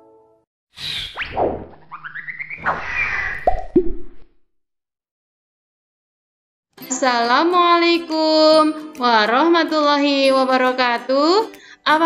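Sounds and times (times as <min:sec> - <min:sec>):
rising whistle-like glides: 0:00.8 - 0:04.2
cartoon swishes: 0:00.8 - 0:04.4
popping blips: 0:01.2 - 0:04.4.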